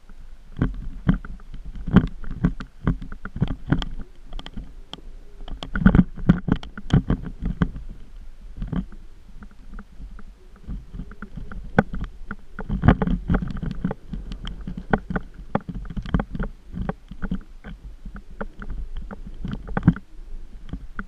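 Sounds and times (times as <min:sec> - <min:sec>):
low rumble on dirt trail: 0:00.0 - 0:21.0
knocks clicks and rattles: 0:08.6 - 0:17.8.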